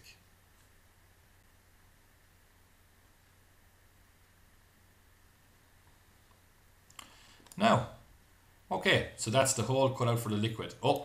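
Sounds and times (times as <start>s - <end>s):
faint steady hiss: 0.0s - 11.0s
low electrical hum: 0.0s - 11.0s.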